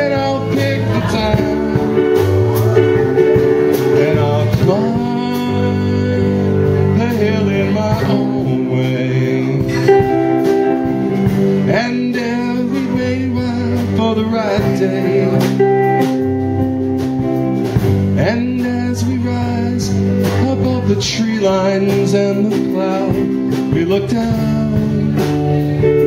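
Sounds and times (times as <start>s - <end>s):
bass guitar: 0.0s - 26.0s
electric guitar lead: 0.0s - 26.0s
steady drum beat: 0.0s - 26.0s.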